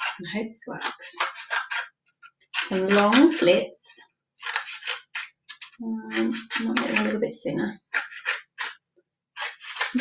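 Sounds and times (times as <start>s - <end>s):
scissors cutting cardboard tube: 0.0s - 0.2s, 0.8s - 1.9s, 2.6s - 3.5s, 4.4s - 7.2s, 7.9s - 8.8s, 9.4s - 10.0s.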